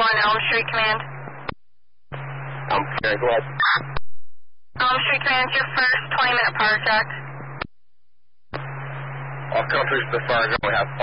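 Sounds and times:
radio channel hiss and hum: 0:00.0 - 0:07.8, 0:08.4 - 0:11.0.

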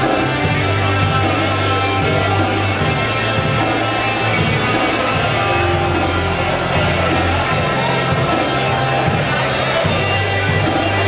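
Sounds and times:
guitars: 0:00.0 - 0:11.0
live band playing: 0:00.0 - 0:11.0.

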